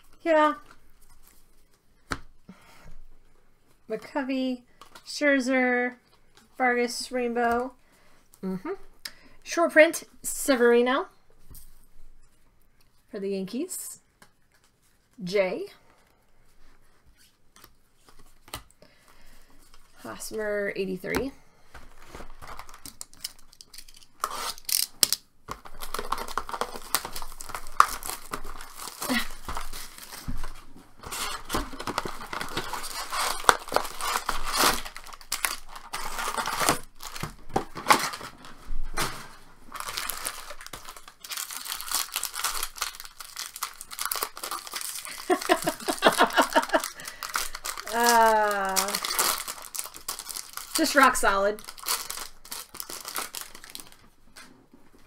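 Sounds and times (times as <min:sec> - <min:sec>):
plastic and foil crinkling and tearing: 0:21.7 - 0:54.4.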